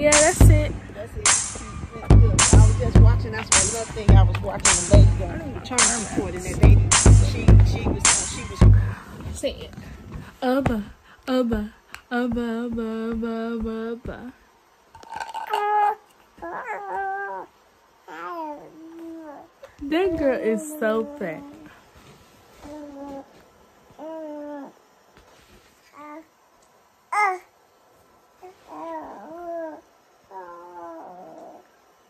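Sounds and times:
baby vocalizing: 0:15.1 - 0:17.5.

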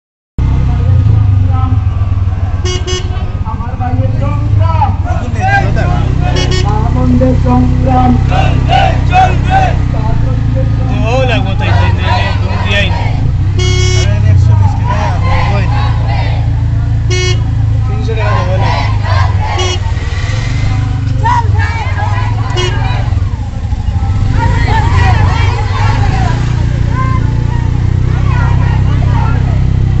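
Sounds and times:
crowd shouting and talking: 0:00.5 - 0:03.8, 0:04.9 - 0:30.0
vehicle horn toots: 0:02.6 - 0:03.4, 0:06.2 - 0:08.9, 0:13.5 - 0:14.4, 0:17.0 - 0:17.8, 0:19.4 - 0:20.0, 0:22.2 - 0:23.3.

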